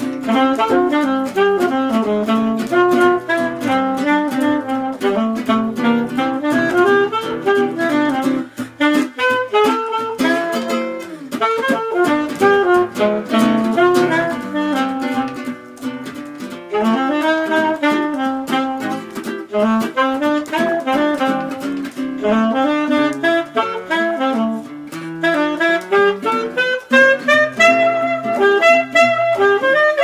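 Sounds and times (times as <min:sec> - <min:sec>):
soprano saxophone jazzy melody: 0:00.0 - 0:30.0
strummed classical guitar: 0:00.0 - 0:30.0.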